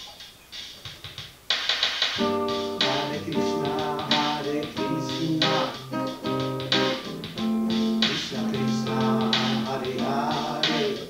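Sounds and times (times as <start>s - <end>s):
muted acoustic guitar strumming: 2.2s - 11.0s.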